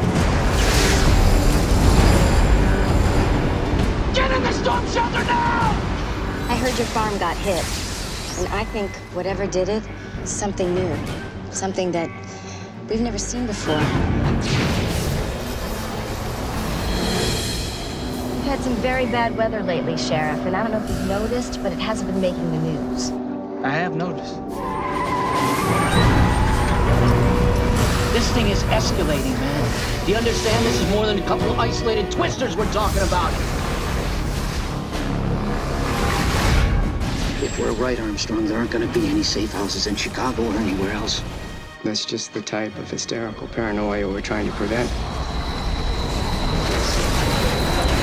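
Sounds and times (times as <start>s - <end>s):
trailer music: 0.0s - 48.0s
thin high whine: 44.2s - 48.0s.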